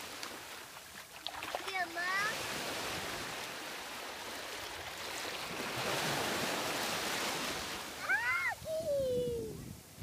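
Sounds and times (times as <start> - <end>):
small waves washing on shore: 0.0 - 10.0.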